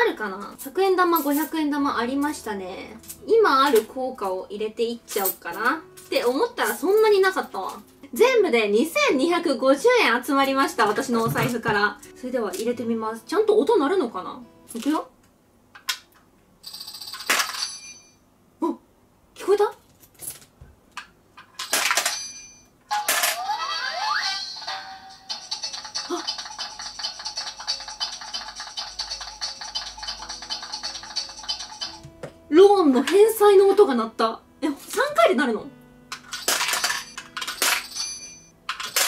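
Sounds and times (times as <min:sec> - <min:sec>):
coins clicking into coin bank: 0:16.6 - 0:18.1, 0:21.4 - 0:23.4, 0:25.3 - 0:32.0, 0:36.1 - 0:39.0
coin drops clattering: 0:16.6 - 0:18.2, 0:21.4 - 0:23.5, 0:25.4 - 0:32.0, 0:36.1 - 0:39.0.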